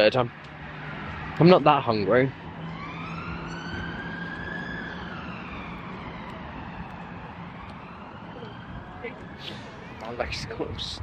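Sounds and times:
emergency vehicle siren wailing: 0.0s - 11.0s.

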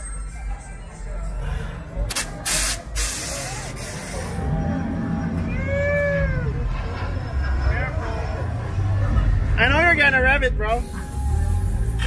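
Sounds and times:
hiss of escaping air: 2.1s - 4.4s
car engine running: 2.1s - 12.0s
crowd whooping: 3.4s - 7.2s.

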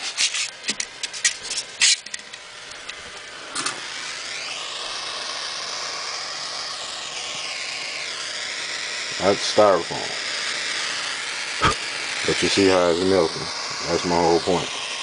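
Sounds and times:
propane torch hissing: 0.0s - 15.0s.

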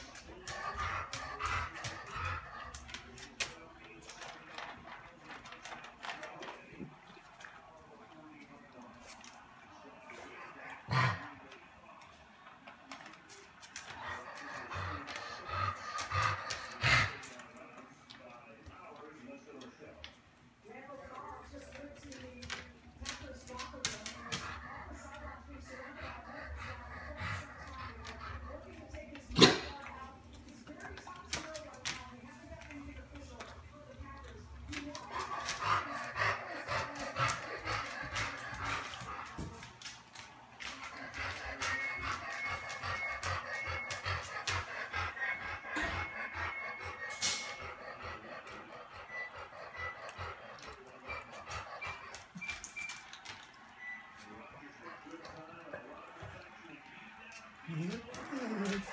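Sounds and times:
murmur of voices: 0.0s - 58.9s
kibble crunching: 21.0s - 46.5s.

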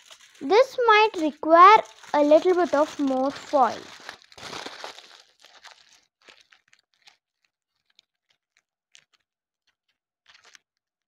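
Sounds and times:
aluminium foil crinkling: 0.0s - 10.9s.

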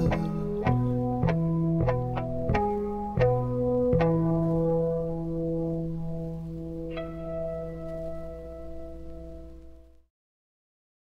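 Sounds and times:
electric guitar playing: 0.0s - 10.0s.

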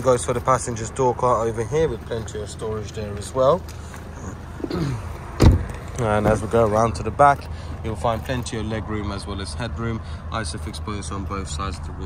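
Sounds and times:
car door shutting thud: 5.4s - 6.6s.

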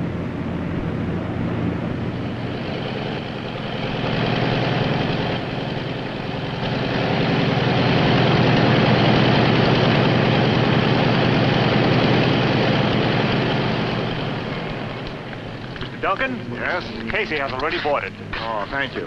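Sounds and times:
propeller aircraft engines droning: 0.0s - 19.0s.

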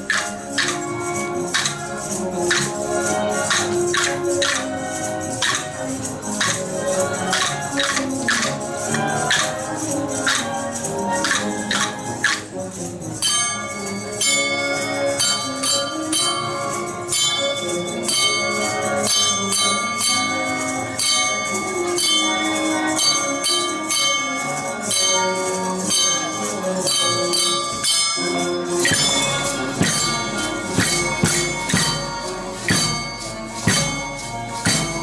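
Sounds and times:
wooden tone blocks clacking: 0.0s - 14.2s, 14.8s - 35.0s
melody: 0.0s - 35.0s
metal cup bells ringing: 0.0s - 35.0s
shakers rattling: 0.0s - 35.0s.

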